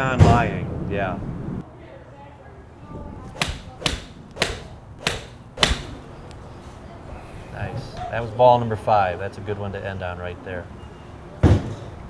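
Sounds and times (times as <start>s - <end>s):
golf club striking balls: 3.3s - 6.1s.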